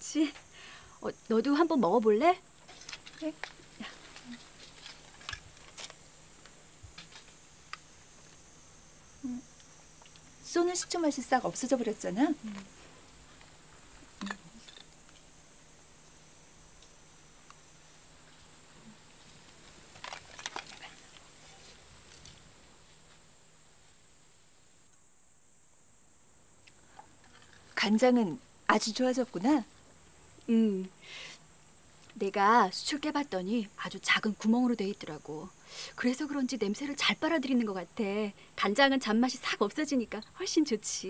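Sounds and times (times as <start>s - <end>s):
faint hiss: 0.0s - 41.0s
low steady hum: 0.0s - 41.0s
person murmuring: 9.2s - 9.5s, 14.2s - 14.6s.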